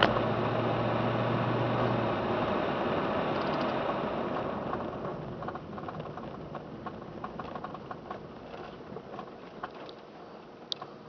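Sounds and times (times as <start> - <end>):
tyre and road noise on snow: 0.0 - 11.0.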